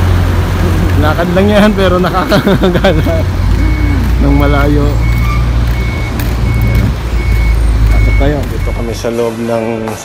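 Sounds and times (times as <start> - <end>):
reversing warning beeps: 3.4 - 9.3.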